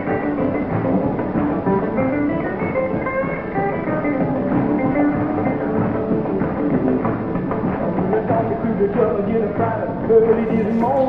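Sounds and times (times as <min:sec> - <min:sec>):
electric guitar solo: 0:00.0 - 0:08.8
rock and roll band playing: 0:00.0 - 0:11.0.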